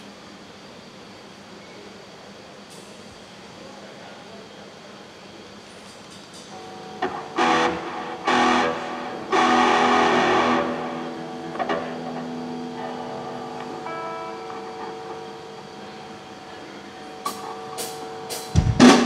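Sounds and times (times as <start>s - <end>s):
electric guitar strumming chords: 6.5s - 19.0s.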